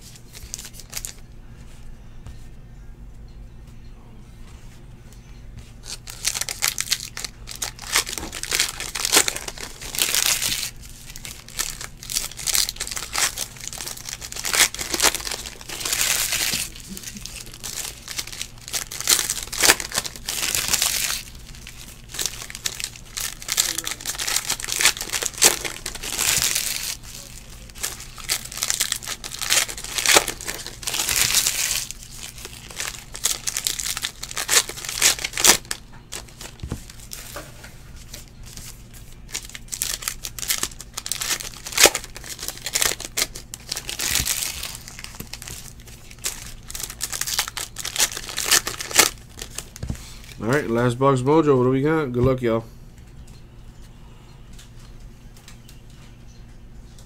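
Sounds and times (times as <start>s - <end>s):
foil wrappers tearing and crinkling: 0.0s - 1.2s, 5.8s - 50.9s.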